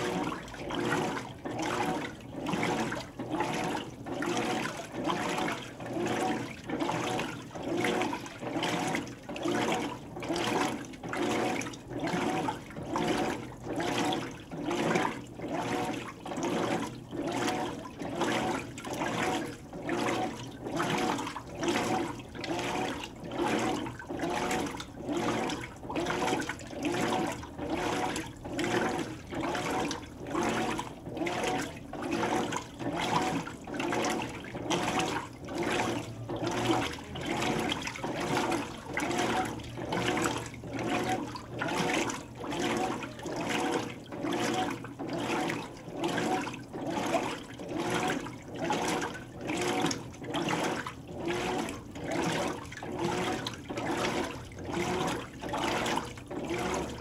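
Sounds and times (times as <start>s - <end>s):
washing machine water sloshing: 0.0s - 57.0s.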